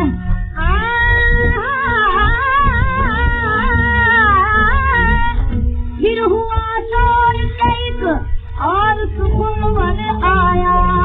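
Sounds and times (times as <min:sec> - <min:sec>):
low rumble from old disc: 0:00.0 - 0:11.0
vocal music melody on old record: 0:00.0 - 0:11.0.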